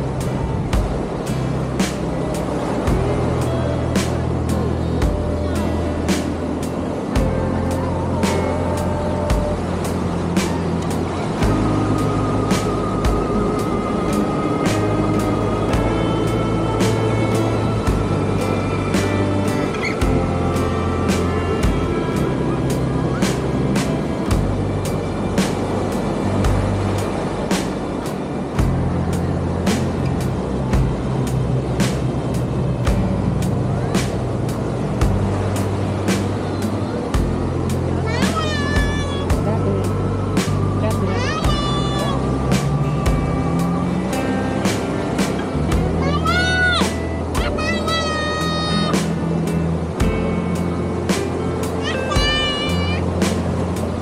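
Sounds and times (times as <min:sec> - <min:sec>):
rock music with drums and bass: 0:00.0 - 0:54.0.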